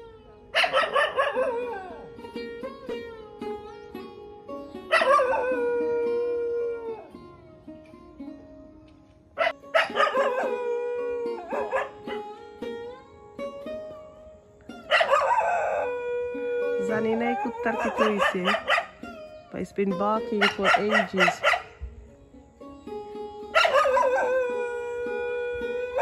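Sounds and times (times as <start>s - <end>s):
dog howling long calls: 0.0s - 2.2s, 4.9s - 7.1s, 9.4s - 12.3s, 14.9s - 19.4s, 23.6s - 26.0s
faint background music: 0.0s - 26.0s.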